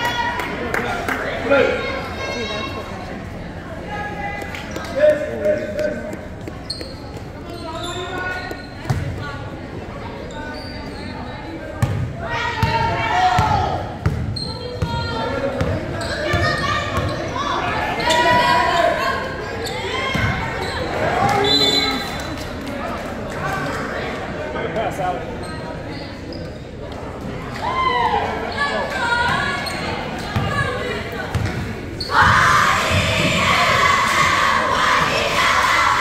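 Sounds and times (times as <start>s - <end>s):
voices shouting: 32.0s - 36.0s.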